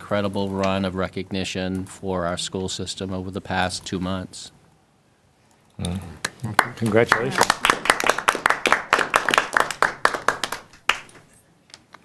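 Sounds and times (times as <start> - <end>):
people clapping: 6.2 - 11.3.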